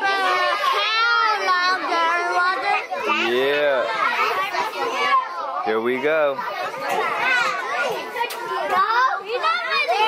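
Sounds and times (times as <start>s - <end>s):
young children chattering: 0.0s - 10.0s.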